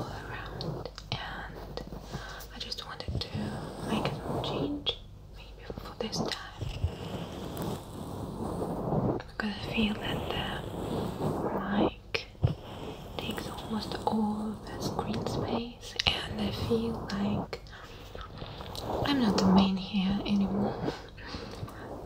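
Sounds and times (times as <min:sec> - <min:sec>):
woman whispering softly: 0:00.0 - 0:06.9, 0:09.2 - 0:12.5, 0:13.1 - 0:22.0.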